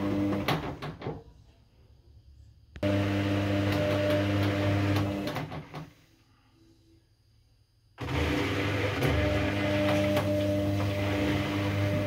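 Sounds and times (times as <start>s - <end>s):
washing machine motor hum: 0.0s - 1.2s, 2.8s - 6.0s, 8.0s - 12.0s.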